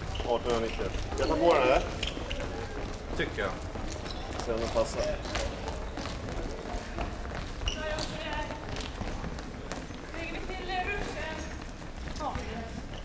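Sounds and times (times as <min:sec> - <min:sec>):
indistinct voices in a hall: 0:00.0 - 0:13.0.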